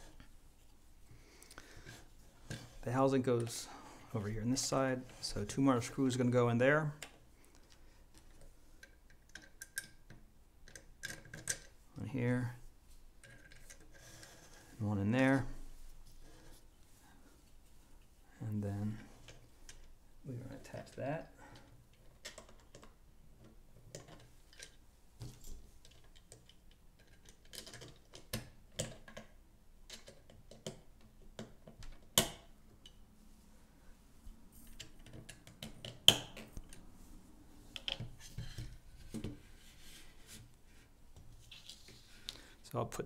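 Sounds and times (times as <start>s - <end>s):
plastic parts clicking and tapping: 7.0s - 11.7s, 21.5s - 33.0s, 34.6s - 36.8s.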